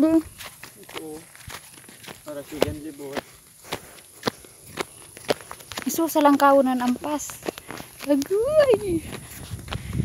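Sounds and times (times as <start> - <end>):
footsteps through tall grass: 0.0 - 10.0.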